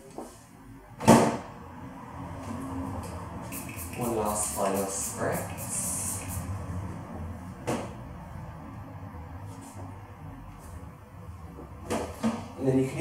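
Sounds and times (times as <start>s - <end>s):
hair spray hissing: 3.4s - 6.6s.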